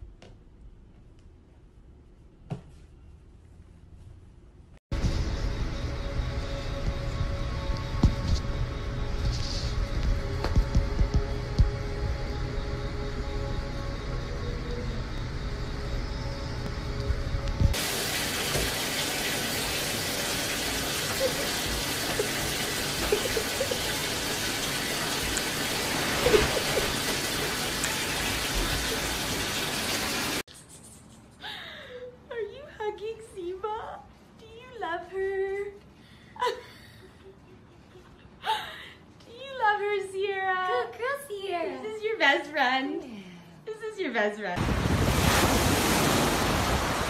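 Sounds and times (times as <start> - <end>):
music with low beat: 5.0 - 13.9
water running from bathtub tap: 17.8 - 30.4.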